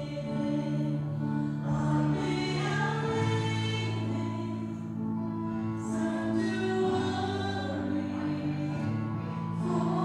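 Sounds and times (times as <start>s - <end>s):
group singing long held notes: 0.0s - 5.0s, 5.8s - 10.0s.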